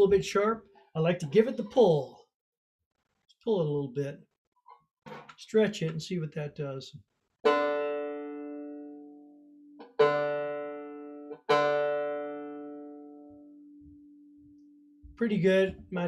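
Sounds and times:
banjo string plucked: 7.5s - 14.2s.

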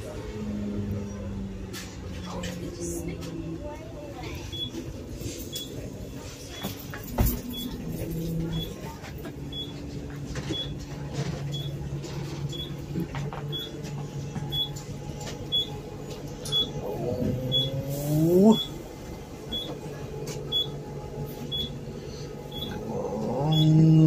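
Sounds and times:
bus engine humming: 0.0s - 24.0s
short electronic beeps: 4.5s - 4.8s, 8.5s - 8.8s, 12.5s - 12.8s, 14.5s - 14.8s, 15.5s - 15.8s, 16.5s - 16.8s, 17.5s - 17.9s, 18.5s - 18.8s, 19.5s - 19.7s, 20.5s - 20.8s, 21.5s - 21.7s, 22.5s - 22.8s.

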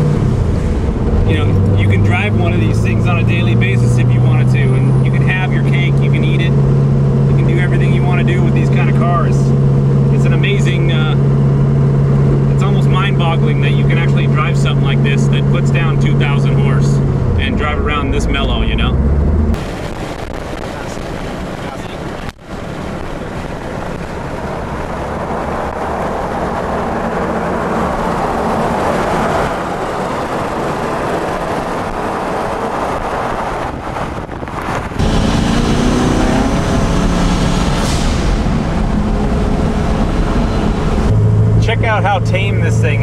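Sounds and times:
car engine low drone: 0.0s - 43.0s
car passing with wind noise: 0.0s - 43.0s.

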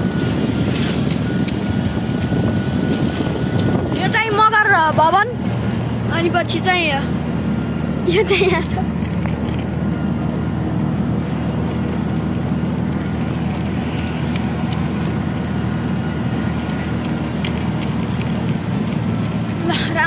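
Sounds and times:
wind noise: 0.0s - 6.1s
engine drone and road rumble: 0.0s - 20.0s.

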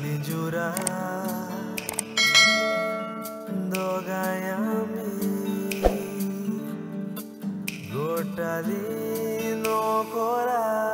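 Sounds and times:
soft guitar music: 0.0s - 10.9s
bright bell chime: 2.2s - 3.7s.

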